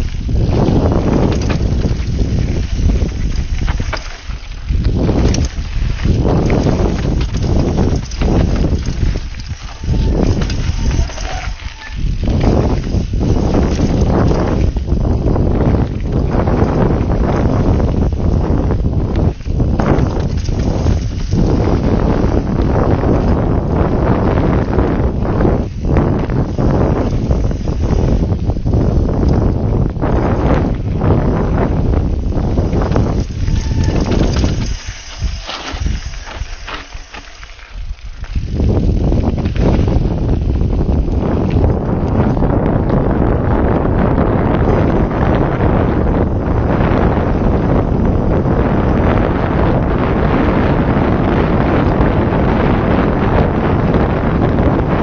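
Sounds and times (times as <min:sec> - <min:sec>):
bike knocks and rattles: 0:00.0 - 0:49.2
rumble of bike tyres: 0:00.0 - 0:55.0
wind buffeting microphone: 0:00.0 - 0:55.0.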